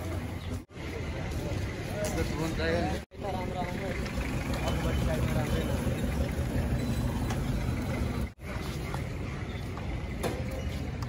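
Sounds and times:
low rumble of traffic: 0.0s - 11.0s
people talking: 0.8s - 9.1s.

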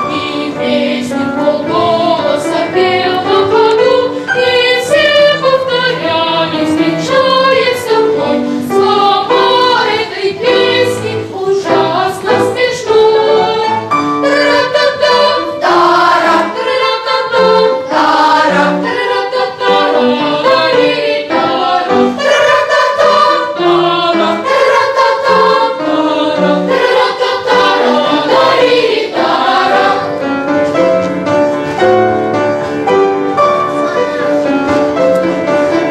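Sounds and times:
children's choir singing: 0.0s - 35.9s.

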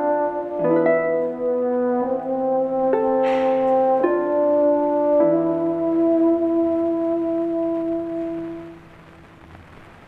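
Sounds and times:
harp accompaniment: 0.0s - 6.7s
french horn playing held notes: 0.0s - 8.8s.

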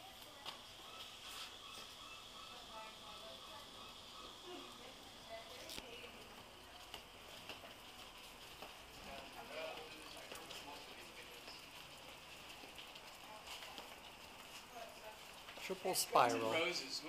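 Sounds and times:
faint footsteps on pavement: 0.3s - 1.9s, 5.3s - 16.0s
faint voices of passers-by: 2.2s - 17.0s.

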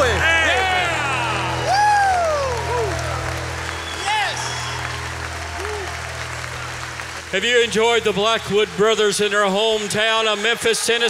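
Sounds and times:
audience applauding and cheering: 0.0s - 11.0s
whoops: 0.3s - 6.3s.

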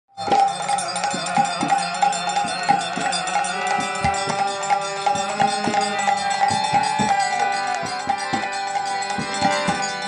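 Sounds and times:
drum beats: 0.1s - 10.0s
bamboo flute: 0.2s - 10.0s
hand cymbal strikes: 0.2s - 10.0s
harmonium: 0.2s - 10.0s.

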